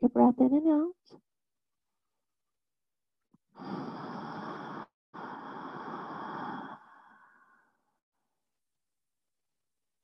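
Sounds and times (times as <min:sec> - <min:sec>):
woman breathing deeply: 0:03.5 - 0:08.0.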